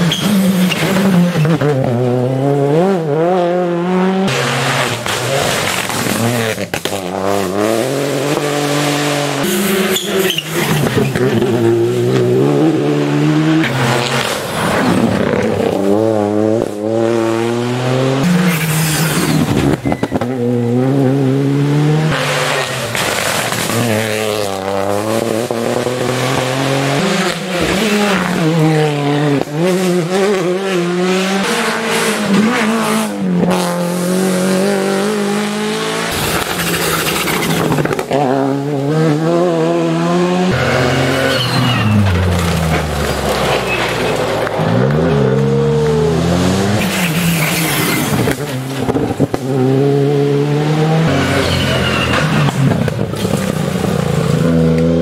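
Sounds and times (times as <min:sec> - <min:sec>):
rally car engines revving past: 0:00.0 - 0:55.0.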